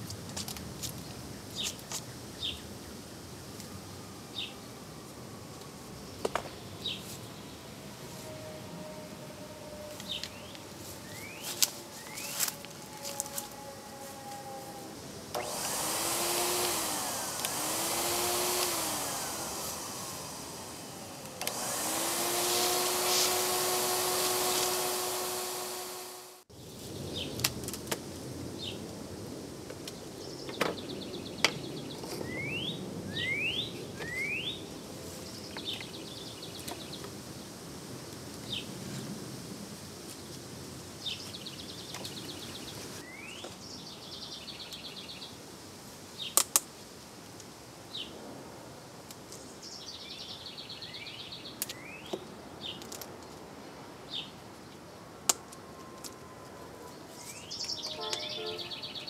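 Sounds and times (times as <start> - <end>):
birds chirping: 5.6 - 27.4, 30.2 - 37.1, 41.0 - 45.4, 56.2 - 59.0
vacuum cleaner running: 8.0 - 26.5.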